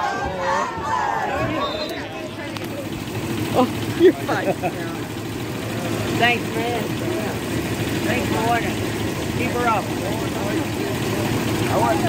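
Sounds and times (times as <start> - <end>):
bus engine idling: 1.5 - 12.0.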